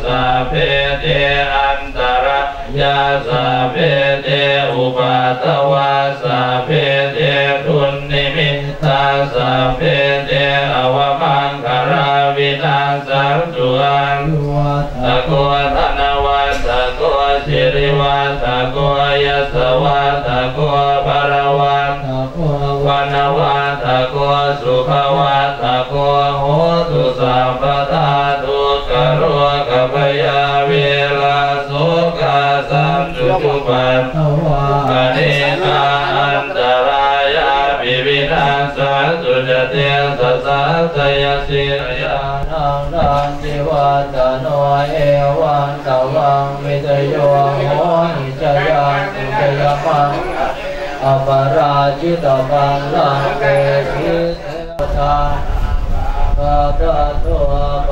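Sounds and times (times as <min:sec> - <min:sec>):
monks chanting in unison: 0:00.0 - 0:57.9.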